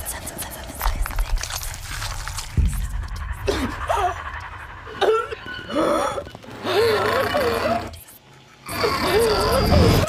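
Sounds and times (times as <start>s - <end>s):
low rumbling drone: 1.0s - 7.5s.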